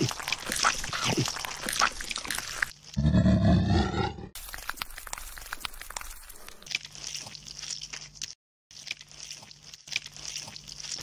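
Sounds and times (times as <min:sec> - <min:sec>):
low growling roar: 0:03.0 - 0:04.4.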